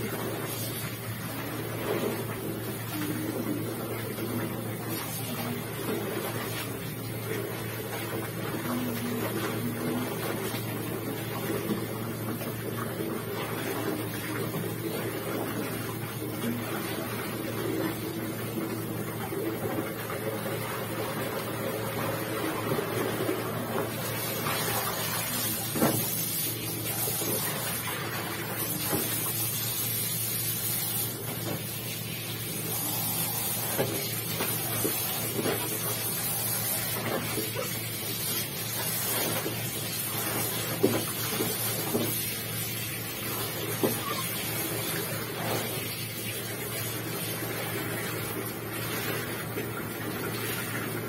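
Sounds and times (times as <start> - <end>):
wet clothes sloshing in water: 0.0 - 51.0.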